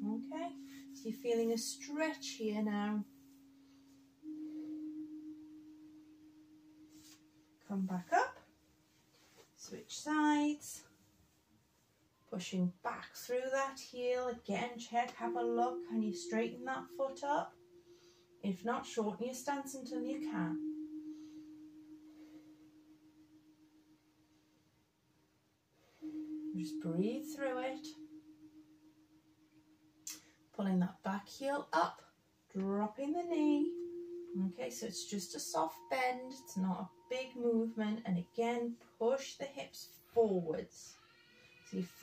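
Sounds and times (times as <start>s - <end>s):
higher tone: 0.0s - 8.4s, 13.8s - 24.5s, 26.0s - 31.7s, 32.5s - 38.9s
steady low pure tone: 0.0s - 8.6s, 12.4s - 25.0s, 25.8s - 40.6s
faint steady hum: 0.0s - 42.0s.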